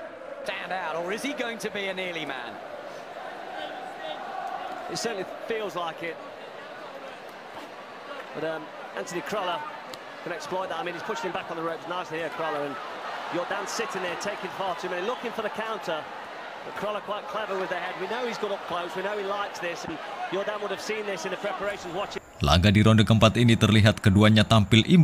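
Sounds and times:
crowd noise and voices: 0.0s - 23.5s.

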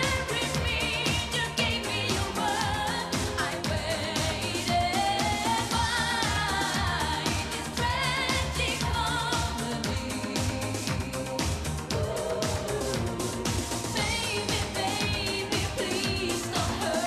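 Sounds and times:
dance beat: 0.0s - 17.0s
woman singing pop song: 0.0s - 17.0s.

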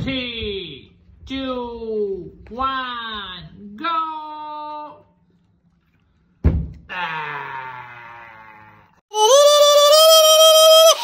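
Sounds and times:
loud thunk: 6.4s - 6.8s.

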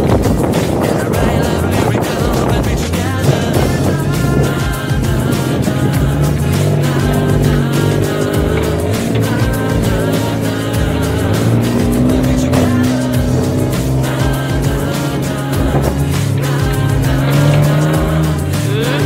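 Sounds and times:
motorcycle engine running: 0.0s - 19.0s
music playing: 0.0s - 19.0s.

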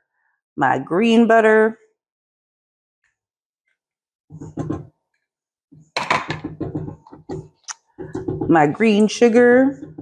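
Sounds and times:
spatula scraping metal bowl: 6.6s - 10.0s.

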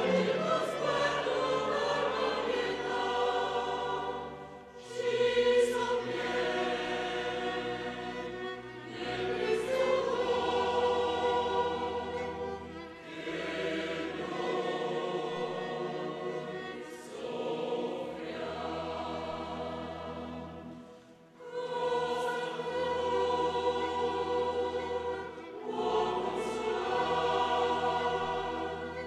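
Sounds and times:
choir singing sacred piece: 0.0s - 29.0s.

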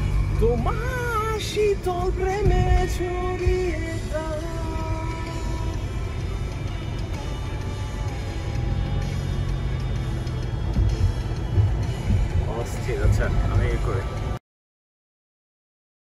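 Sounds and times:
background music: 0.0s - 14.4s
car road noise: 0.0s - 14.4s.

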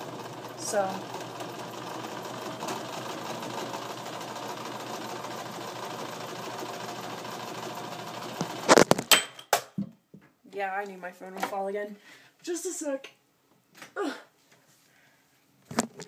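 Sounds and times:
sewing machine stitching: 0.0s - 9.0s
phone falling over clattering: 8.7s - 9.7s.

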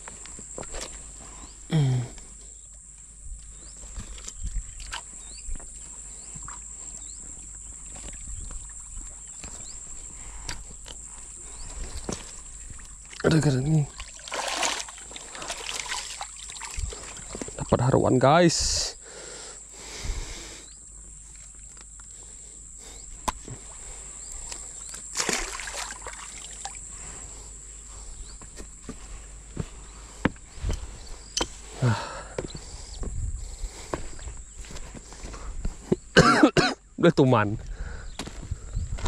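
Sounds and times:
footsteps on gravel: 13.8s - 17.7s, 28.4s - 31.8s, 32.4s - 36.6s, 38.1s - 39.0s
person coughing: 36.1s - 36.8s.

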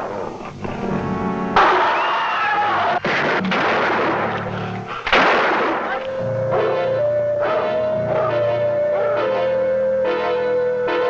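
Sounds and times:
music: 0.0s - 11.0s
rifle gunshot echoing: 5.1s - 6.1s.

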